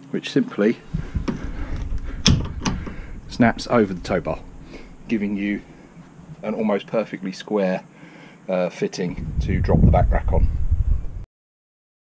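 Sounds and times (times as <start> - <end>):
handling clatter: 0.9 - 6.5.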